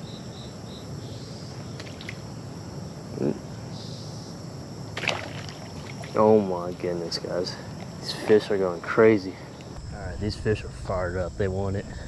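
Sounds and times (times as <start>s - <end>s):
cricket chirping: 0.0s - 12.0s
light water splashes: 1.8s - 2.2s, 4.9s - 8.0s.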